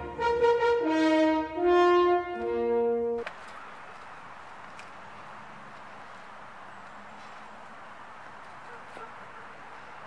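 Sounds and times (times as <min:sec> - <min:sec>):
brass horn notes: 0:00.0 - 0:03.2
outdoor background noise: 0:00.0 - 0:10.0.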